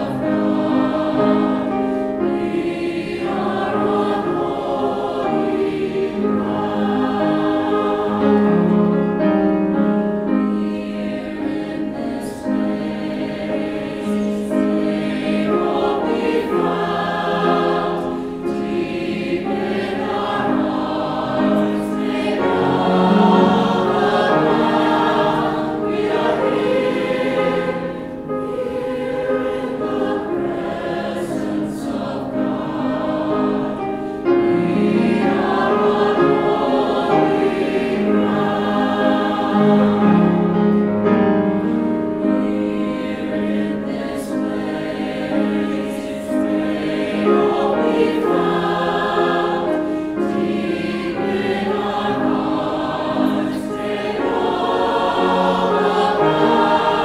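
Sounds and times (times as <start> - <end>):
mixed choir singing: 0.0 - 57.0
piano: 0.0 - 57.0.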